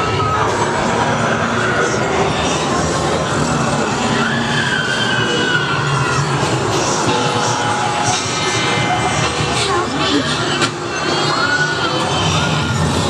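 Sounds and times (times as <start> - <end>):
grinding horror music: 0.0 - 13.0
high screeching tone: 3.4 - 13.0.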